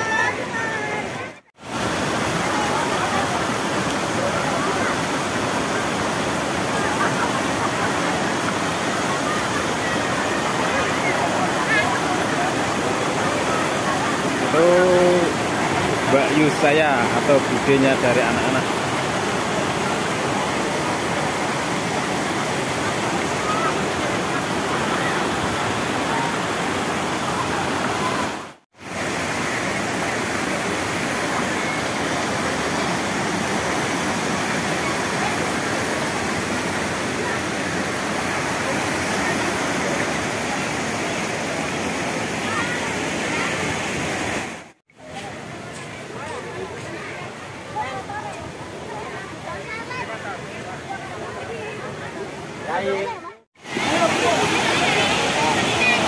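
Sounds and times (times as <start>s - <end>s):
falling water rushing: 0.0s - 56.0s.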